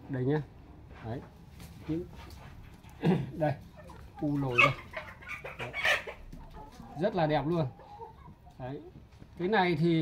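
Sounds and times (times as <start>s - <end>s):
chickens clucking: 0.7s - 10.0s.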